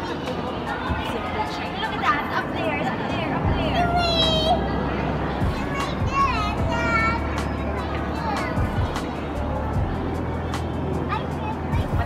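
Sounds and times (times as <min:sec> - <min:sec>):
background music: 0:00.0 - 0:12.0
crowd hubbub: 0:00.0 - 0:12.0
children calling out: 0:05.4 - 0:09.4.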